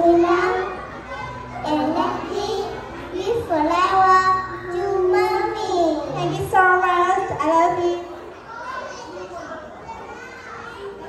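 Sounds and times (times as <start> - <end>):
children talking softly: 0.0 - 11.0.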